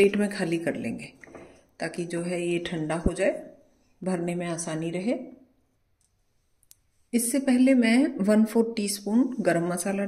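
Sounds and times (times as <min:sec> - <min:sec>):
woman's voice: 0:01.8 - 0:05.4, 0:07.2 - 0:10.0.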